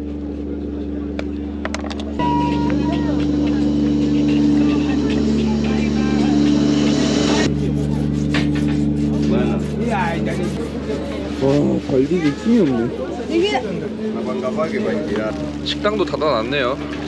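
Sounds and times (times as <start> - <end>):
ferry engine hum: 0.0 - 17.0
passengers' voices: 0.0 - 17.0.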